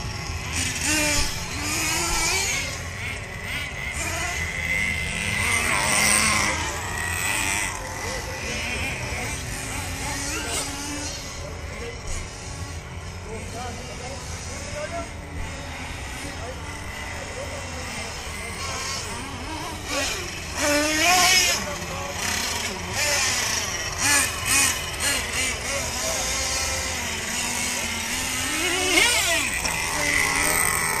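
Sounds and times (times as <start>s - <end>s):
radio-controlled car motors whining: 0.0s - 31.0s.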